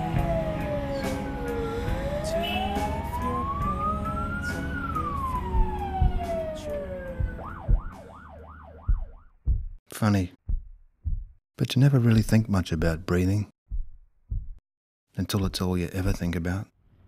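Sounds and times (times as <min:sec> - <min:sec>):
low vehicle rumble: 0:00.0 - 0:08.0
police siren wailing and yelping: 0:00.0 - 0:09.3.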